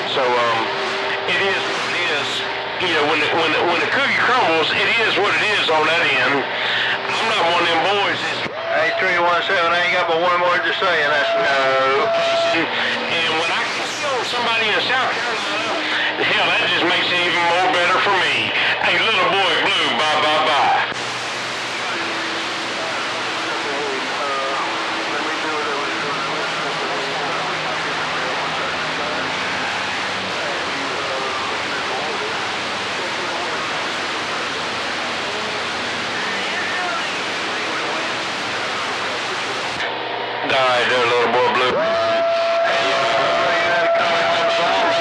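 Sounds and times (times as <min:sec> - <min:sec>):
garbled radio voice: 0:00.0 - 0:21.0
radio carrier tones: 0:00.0 - 0:45.0
radio static hiss: 0:00.0 - 0:45.0
faint distant radio voices: 0:21.6 - 0:41.8.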